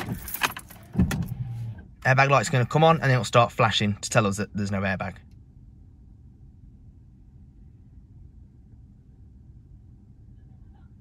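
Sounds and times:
keys jangling: 0:00.0 - 0:01.0
low electrical hum: 0:00.0 - 0:11.0.

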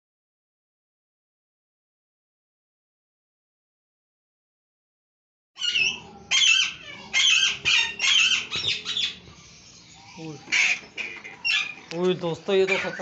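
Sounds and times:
parakeets squawking: 0:05.6 - 0:13.0.

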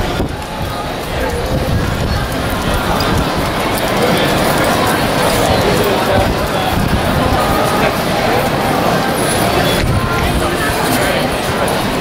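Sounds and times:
many people talking: 0:00.0 - 0:12.0.

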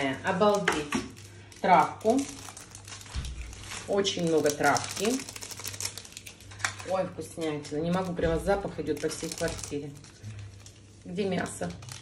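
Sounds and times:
sachet crinkling and clicking: 0:00.5 - 0:06.9, 0:07.9 - 0:12.0.

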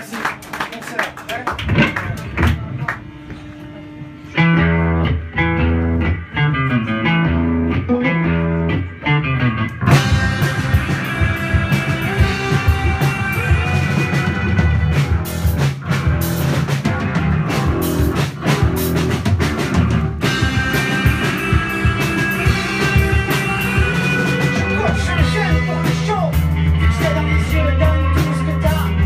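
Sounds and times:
live rock band playing: 0:01.2 - 0:29.0.

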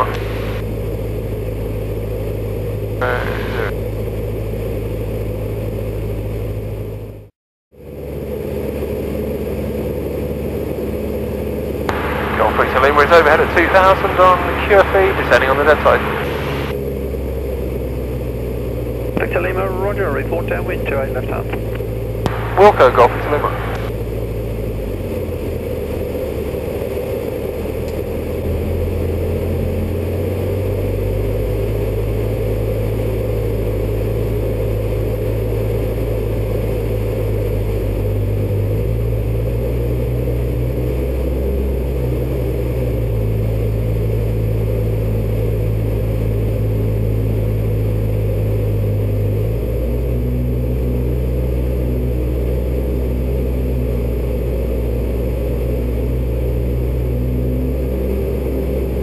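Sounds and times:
propeller aircraft engine droning: 0:00.0 - 0:59.0.

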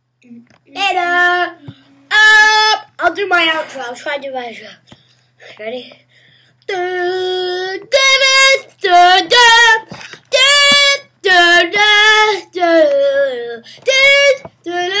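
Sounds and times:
child singing: 0:00.3 - 0:02.9, 0:06.7 - 0:15.0.

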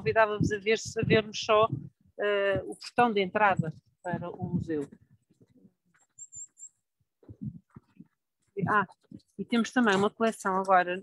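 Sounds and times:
faint high bird chirps: 0:06.2 - 0:06.8.

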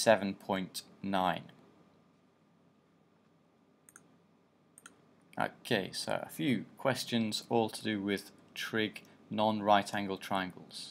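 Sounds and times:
faint sharp clicks: 0:03.8 - 0:04.1, 0:04.8 - 0:05.0.

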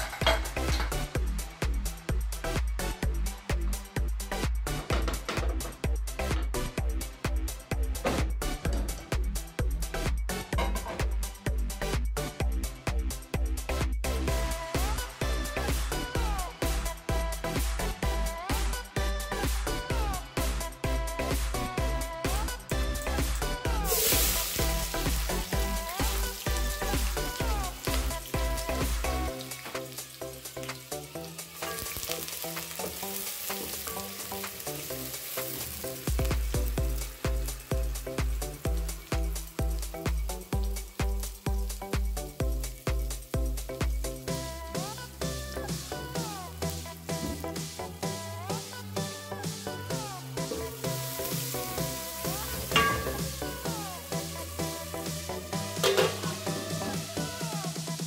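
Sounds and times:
electronic music with bass beat: 0:00.0 - 0:31.6, 0:34.0 - 0:58.0
onions sizzling in oil: 0:22.7 - 0:45.0, 0:50.4 - 0:54.6, 0:55.6 - 0:56.9.

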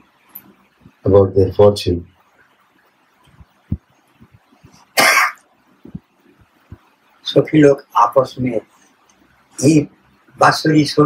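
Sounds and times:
person coughing: 0:04.9 - 0:05.4.

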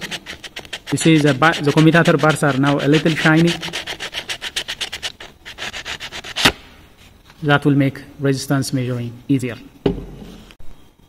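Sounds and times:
sandpaper scratching on metal: 0:00.0 - 0:06.5.

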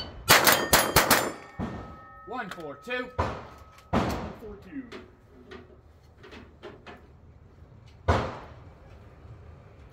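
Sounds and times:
bullets ringing on steel plates: 0:00.0 - 0:04.9
rifle shots: 0:00.3 - 0:02.0.

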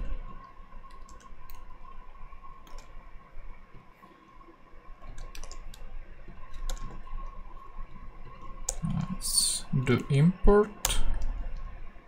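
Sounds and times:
faint steady tone: 0:00.0 - 0:12.0
computer keyboard keys clicking: 0:00.9 - 0:01.6, 0:02.6 - 0:02.9, 0:05.0 - 0:05.8, 0:06.5 - 0:07.1.

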